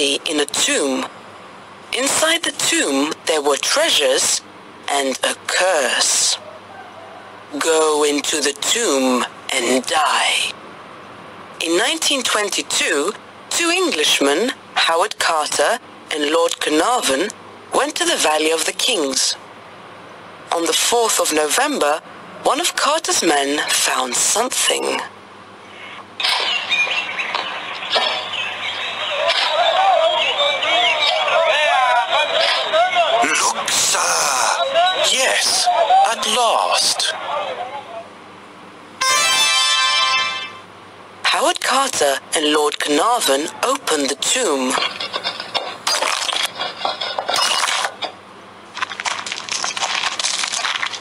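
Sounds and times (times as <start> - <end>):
birds chirping: 25.6 - 31.5
stone clattering and crunching: 48.8 - 51.0.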